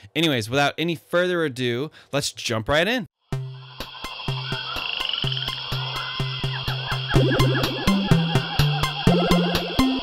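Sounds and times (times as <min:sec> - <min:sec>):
electronic intro music: 0:03.3 - 0:10.0
chirping animal-call effects: 0:03.5 - 0:10.0.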